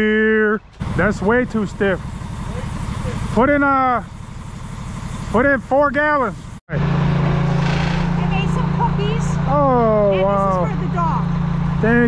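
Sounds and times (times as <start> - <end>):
truck diesel engine drone: 0.0 - 12.0.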